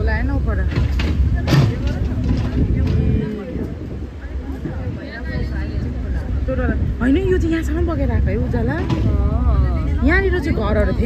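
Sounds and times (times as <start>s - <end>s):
people talking: 0.0s - 11.0s
steady low rumble: 0.0s - 11.0s.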